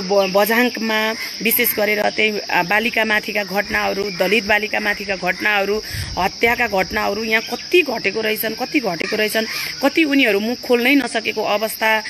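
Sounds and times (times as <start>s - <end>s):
crickets chirring: 0.0s - 12.0s
woman talking: 0.0s - 12.0s.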